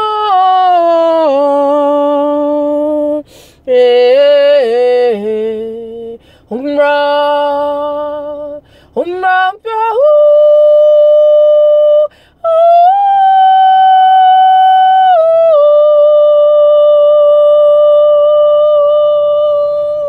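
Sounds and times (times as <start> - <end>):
woman singing wordless notes: 0.0 - 20.0.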